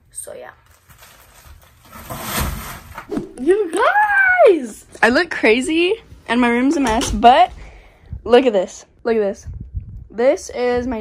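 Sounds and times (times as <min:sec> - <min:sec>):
plastic package rustling: 0:00.6 - 0:03.0.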